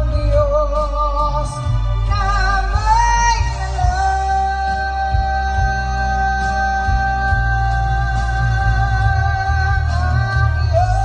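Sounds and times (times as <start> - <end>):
man singing with vibrato: 0.0 - 11.0.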